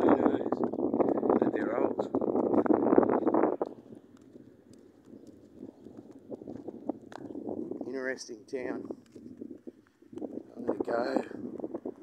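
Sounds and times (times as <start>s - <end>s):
footsteps on pavement: 0.4s - 7.8s, 8.8s - 10.5s.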